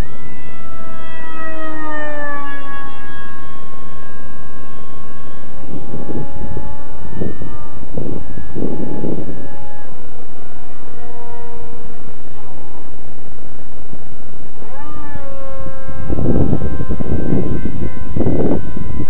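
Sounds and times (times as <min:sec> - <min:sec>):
electric motor propeller whine: 0:00.0 - 0:19.0
rushing wind noise: 0:02.2 - 0:11.0, 0:11.6 - 0:19.0.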